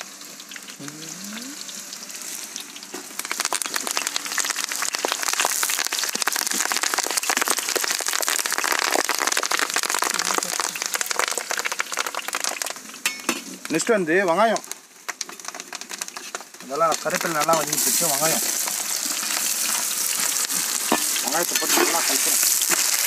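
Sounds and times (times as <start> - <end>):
hot oil sizzling and crackling: 0.0 - 23.0.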